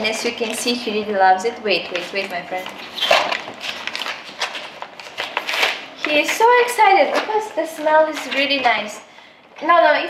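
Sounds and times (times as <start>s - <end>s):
paper and plastic bag rustling: 1.8s - 9.0s.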